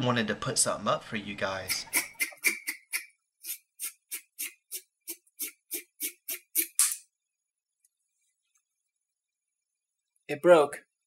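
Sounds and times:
rhythmic percussive beat: 1.7s - 3.0s.

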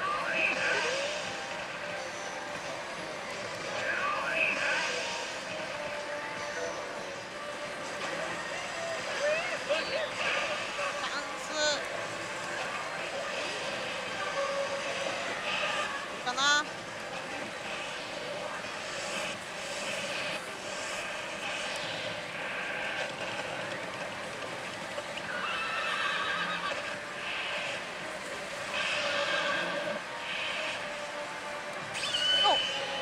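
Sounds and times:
slot machine sound effects: 31.9s - 33.0s.

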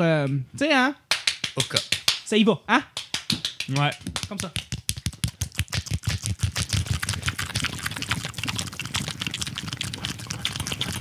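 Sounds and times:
rapid continuous taps: 3.0s - 11.0s.

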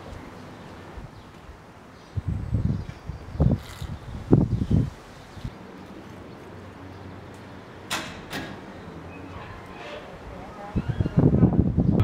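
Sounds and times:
gate latch clicks: 7.9s - 8.6s.

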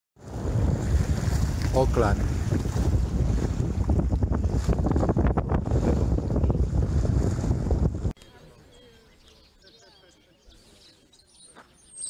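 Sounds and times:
water splashing: 0.2s - 8.2s
wind buffeting the microphone: 0.2s - 8.2s.

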